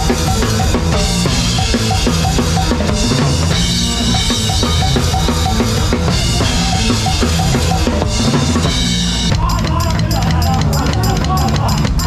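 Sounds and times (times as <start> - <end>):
drum kit beat: 0.0 - 12.0
live band playing: 0.0 - 12.0.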